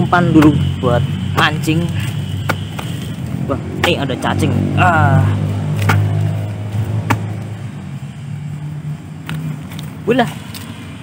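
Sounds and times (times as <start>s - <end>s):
low engine hum: 0.0s - 11.0s
hoe chopping into soil: 5.7s - 6.2s, 7.0s - 7.4s.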